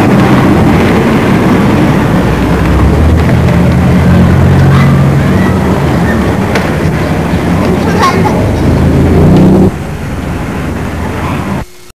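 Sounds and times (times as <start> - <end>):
vehicle engine rumble: 0.0 - 11.9
steady hiss: 6.3 - 11.9.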